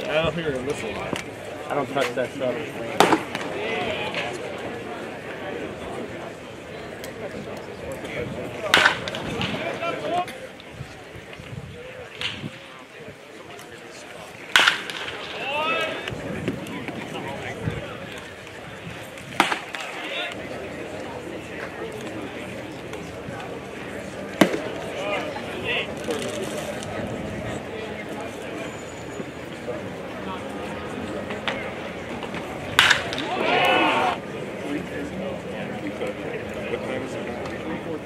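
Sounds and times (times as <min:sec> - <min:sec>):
background talk: 0:00.0 - 0:38.0
murmur of voices: 0:00.0 - 0:38.0
baseball striking with pop: 0:14.5 - 0:15.1, 0:32.7 - 0:33.3
baseball smacking into mitt: 0:32.8 - 0:33.3.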